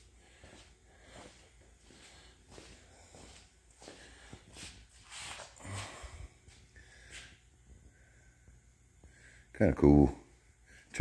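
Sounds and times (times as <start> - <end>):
footsteps on concrete floor: 0.0 - 7.4
breathy noises: 5.3 - 9.5.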